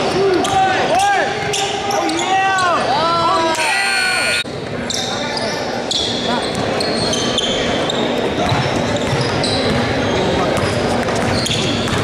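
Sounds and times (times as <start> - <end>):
shrill steady tone: 3.5 - 4.4.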